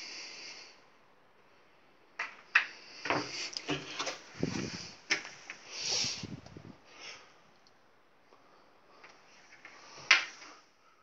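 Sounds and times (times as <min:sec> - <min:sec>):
knocks and rustles: 0:02.2 - 0:05.6.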